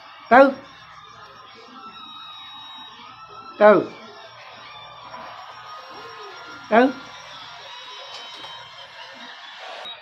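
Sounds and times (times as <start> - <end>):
thin high tone: 0.0 - 10.0
voices: 0.0 - 10.0.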